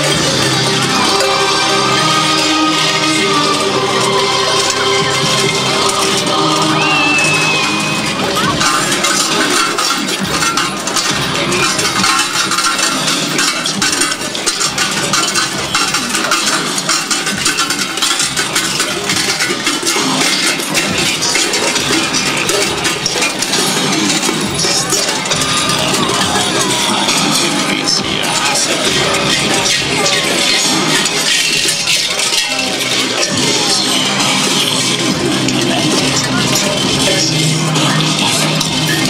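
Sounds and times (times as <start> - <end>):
bells jangling: 0.0 - 39.0
loud music: 0.0 - 39.0.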